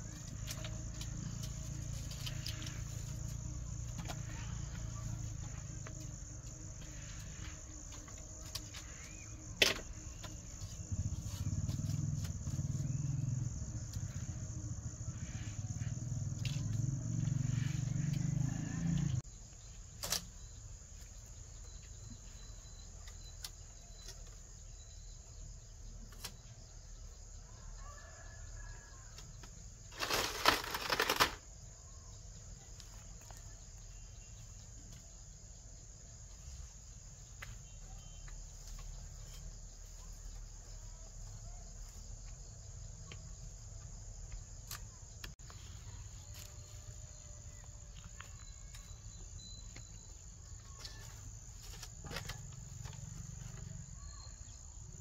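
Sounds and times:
insects chirring: 0.0s - 55.0s.

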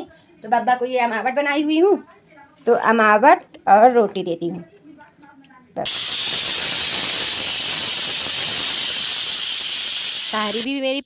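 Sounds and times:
pressure cooker steam hiss: 5.8s - 10.7s.

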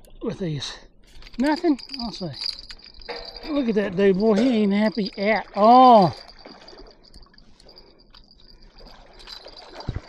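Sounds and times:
water splashing and trickling: 1.1s - 10.0s.

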